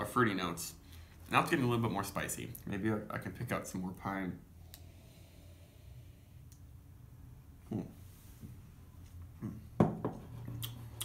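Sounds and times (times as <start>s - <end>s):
person humming mm: 7.7s - 8.0s, 9.4s - 9.8s
glass knocking on table: 9.8s - 10.2s.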